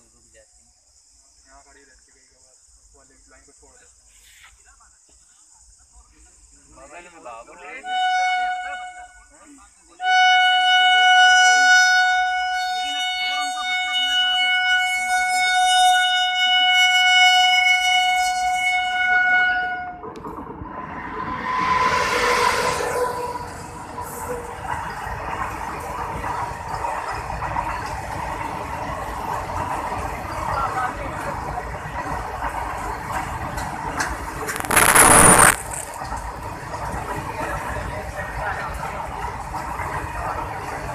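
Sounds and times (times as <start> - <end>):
locomotive horn blast: 7.8 - 9.3, 10.0 - 20.1, 21.4 - 24.4
train rushing past: 19.9 - 40.9
freight wagons rumbling and clattering: 23.2 - 40.9.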